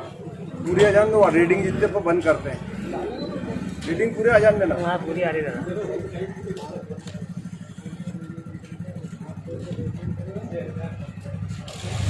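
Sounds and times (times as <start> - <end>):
faint murmur of voices: 0.0 - 12.0
fuel pump humming: 0.3 - 12.0.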